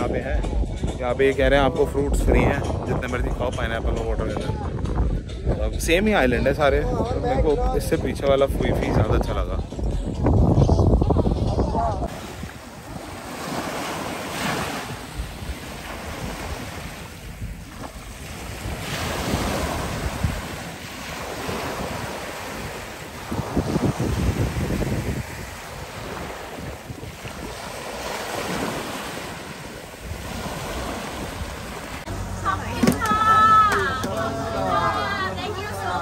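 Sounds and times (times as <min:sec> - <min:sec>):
wind buffeting microphone: 0:00.0 - 0:36.0
small waves breaking on sand: 0:12.1 - 0:32.1.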